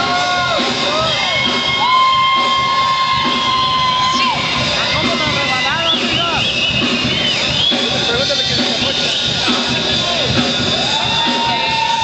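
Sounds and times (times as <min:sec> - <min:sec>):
crowd shouting and whooping: 0:00.0 - 0:12.0
live band music: 0:00.0 - 0:12.0.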